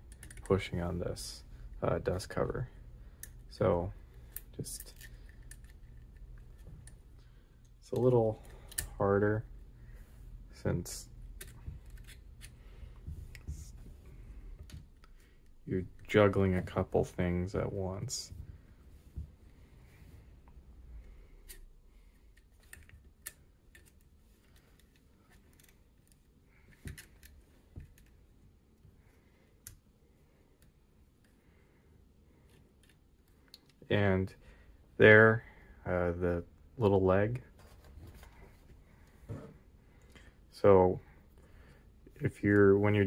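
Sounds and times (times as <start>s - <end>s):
small metal and plastic clicks: 0.1s - 0.6s, 4.3s - 7.0s, 7.6s - 9.0s, 22.3s - 28.2s.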